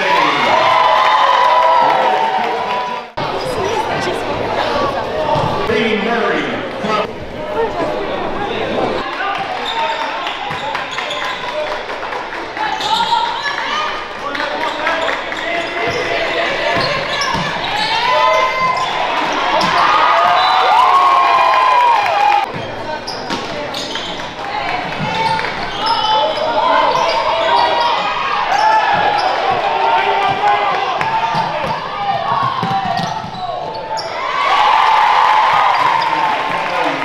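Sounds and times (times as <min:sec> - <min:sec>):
people shouting and chattering: 0:00.0 - 0:37.0.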